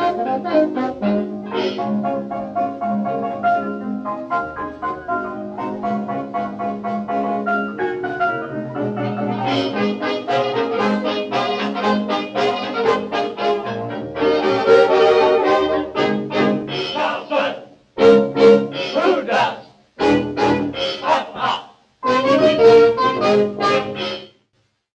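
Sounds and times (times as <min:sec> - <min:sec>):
dance orchestra playing: 0:08.4 - 0:24.2.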